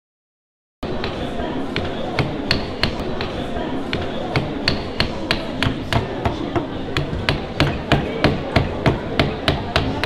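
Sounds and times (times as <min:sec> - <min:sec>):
busy hall background noise: 0:00.8 - 0:10.0.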